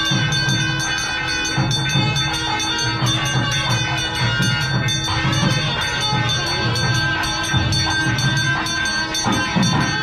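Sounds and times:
brass bell ringing fast: 0.0s - 10.0s
low drum beat: 0.0s - 10.0s.

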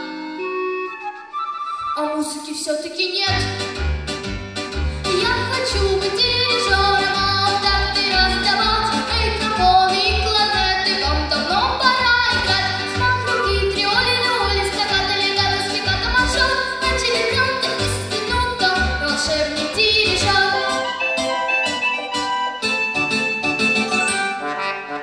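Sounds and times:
girl singing into microphone: 2.0s - 3.6s, 5.1s - 20.8s.

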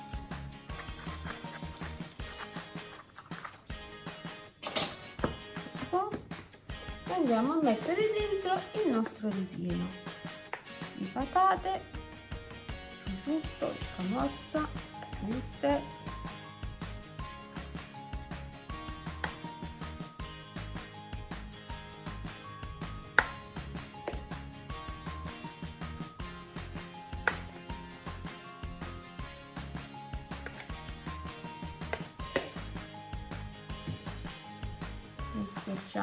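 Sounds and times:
background music with steady beat: 0.0s - 36.0s.

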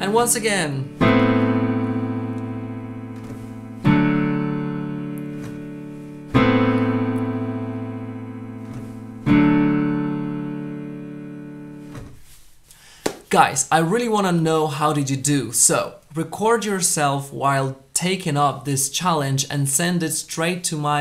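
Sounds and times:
piano chords ringing: 0.0s - 12.3s.

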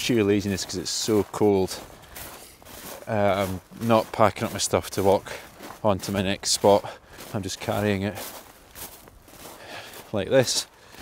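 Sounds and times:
footsteps in thin snow: 0.0s - 11.0s.

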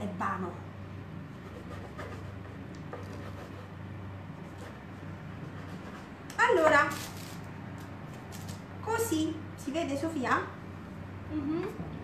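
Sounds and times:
steady low hum: 0.0s - 12.0s
knife scraping dough: 1.4s - 3.8s.

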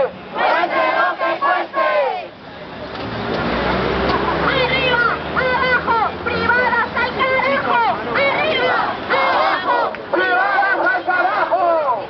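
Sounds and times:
crowd chanting and shouting: 0.0s - 2.4s, 4.0s - 12.0s.

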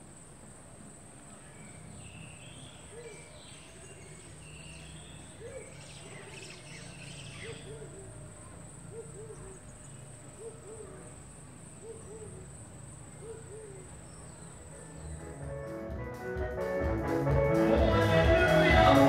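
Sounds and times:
higher bird chirps: 1.3s - 15.8s.

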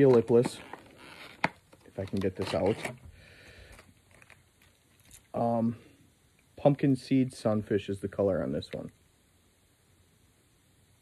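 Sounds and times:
packaging rustling: 0.0s - 5.3s.

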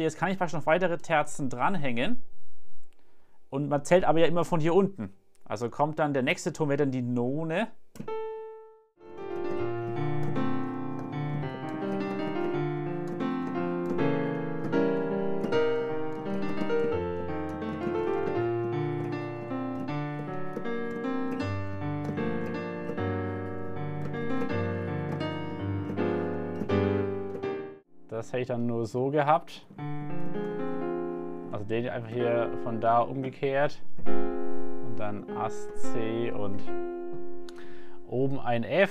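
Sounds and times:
digital piano chords and melody: 6.0s - 38.9s.

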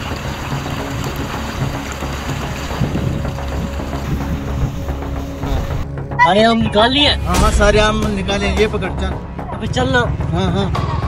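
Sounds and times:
water pouring into a tank: 0.0s - 5.8s
low hum: 7.2s - 9.6s.

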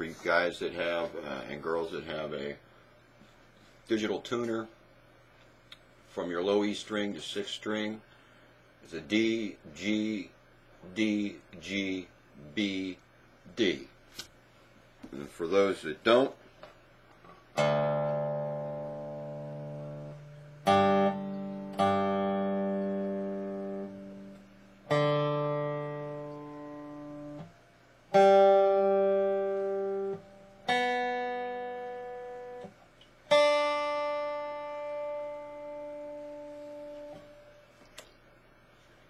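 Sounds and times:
resonator guitar notes ringing: 17.6s - 32.7s, 33.3s - 37.6s.

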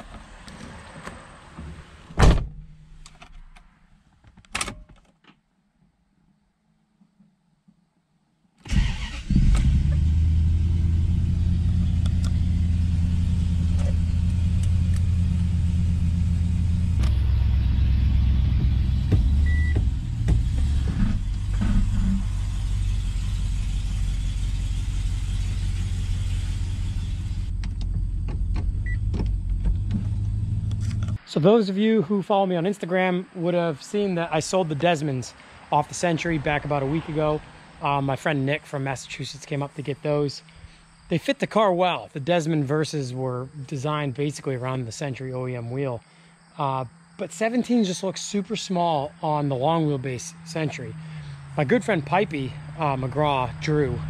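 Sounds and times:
car engine starting and idling: 8.6s - 31.2s, 47.4s - 54.0s.

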